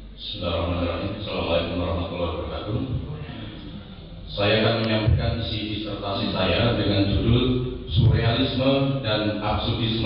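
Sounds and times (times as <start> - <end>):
man chanting a prayer: 0.0 - 10.0.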